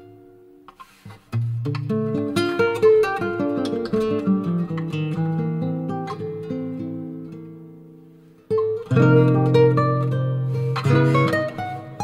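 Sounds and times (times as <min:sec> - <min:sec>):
jazz guitar chords and notes: 0:00.0 - 0:12.0.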